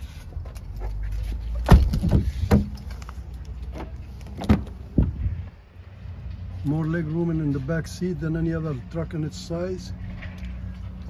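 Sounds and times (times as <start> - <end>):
truck door clunks: 1.6 - 2.8, 3.7 - 5.1.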